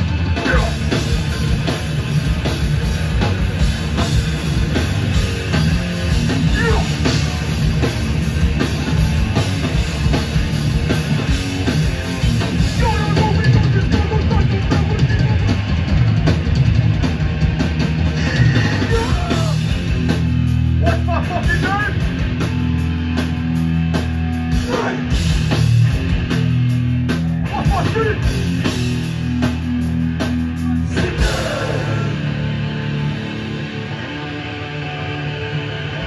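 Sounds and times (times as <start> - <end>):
pounding drum kit: 0.0 - 34.4
distorted electric guitars: 0.0 - 36.0
punk band playing live: 0.0 - 36.0.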